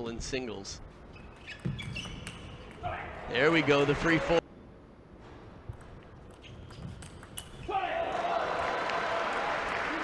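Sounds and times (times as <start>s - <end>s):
crowd applauding and cheering: 8.0s - 10.0s.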